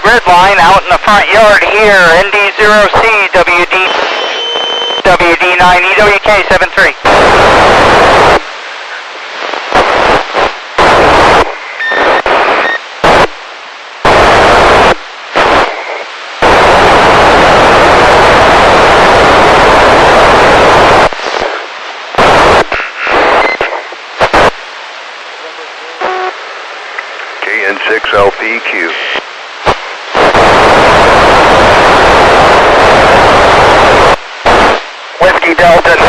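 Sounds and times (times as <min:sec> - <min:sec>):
garbled warbling radio transmission: 0:00.0 - 0:07.0, 0:27.4 - 0:29.2
bursts of radio static: 0:00.0 - 0:24.6, 0:25.2 - 0:36.0.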